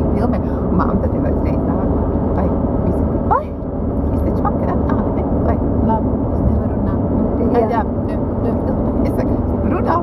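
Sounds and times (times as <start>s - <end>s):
car cabin engine drone: 0.0s - 10.0s.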